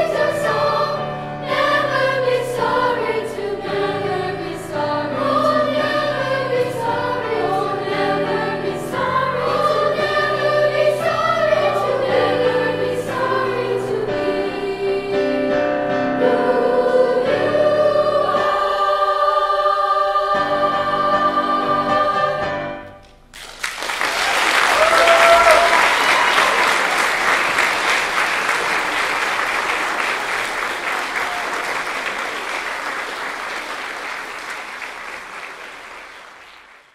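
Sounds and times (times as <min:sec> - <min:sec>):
treble choir singing: 0:00.0 - 0:22.9
audience applauding: 0:23.3 - 0:36.9
audience cheering: 0:23.8 - 0:35.1.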